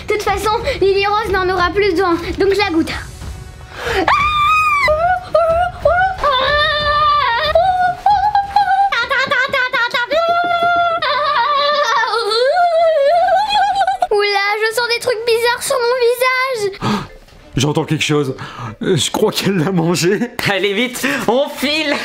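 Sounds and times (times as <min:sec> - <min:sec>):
girl screaming and wailing: 0:04.0 - 0:14.1.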